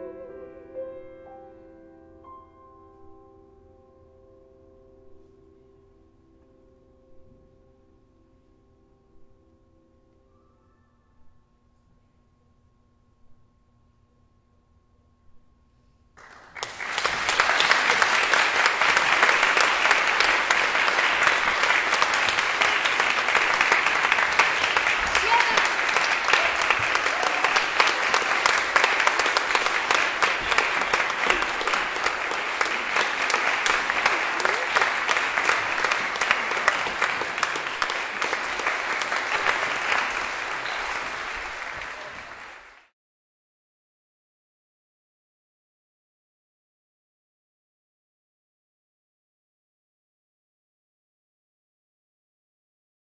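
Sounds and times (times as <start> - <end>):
audience applauding: 16.2 - 42.9.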